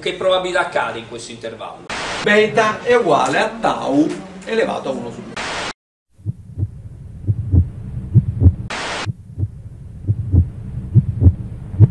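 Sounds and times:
static-like hiss burst: 1.9 - 2.3, 5.3 - 5.8, 8.7 - 9.2
deep thumps in pairs: 6.2 - 11.9.

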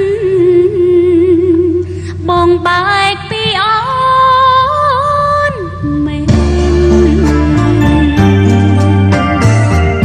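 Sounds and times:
instrumental accompaniment: 5.8 - 10.0.

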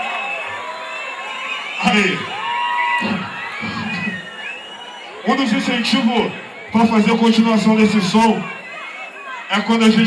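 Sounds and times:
audience cheering and whooping: 0.0 - 10.0.

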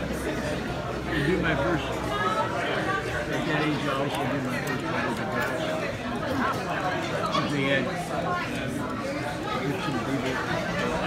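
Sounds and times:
murmur of overlapping conversation: 0.0 - 11.0.

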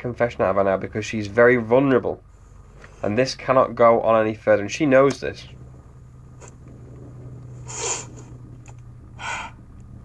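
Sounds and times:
steady low hum: 0.0 - 10.0
woman sniffing: 7.6 - 8.4, 9.2 - 9.6.

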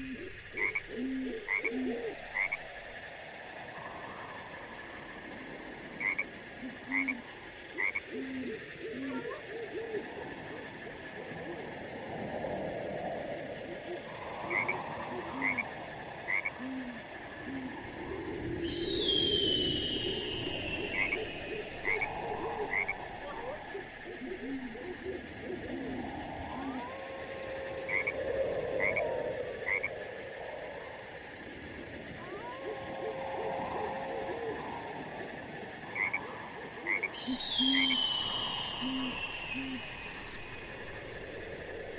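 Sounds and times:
frogs croaking in a chorus: 0.0 - 41.9
long falling whistle: 18.8 - 22.2
high chirps: 21.3 - 22.2, 38.8 - 40.6
steady high tone: 21.3 - 22.2, 38.9 - 40.6.

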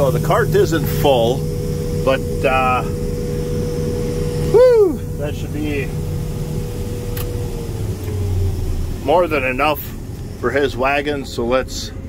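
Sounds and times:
combine harvester droning: 0.0 - 12.0
thin whine: 0.0 - 12.0.

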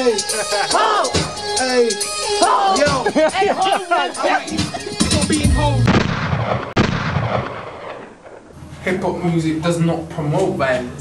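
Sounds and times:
loud blasts with echo: 4.6 - 8.6.

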